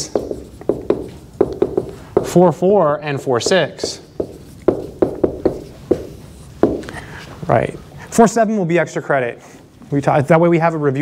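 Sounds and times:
marker tapping on whiteboard: 0:00.0 - 0:02.6, 0:03.4 - 0:07.0.

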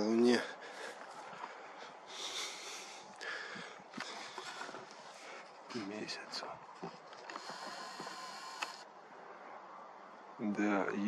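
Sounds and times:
steady high hiss: 0:01.7 - 0:09.4.

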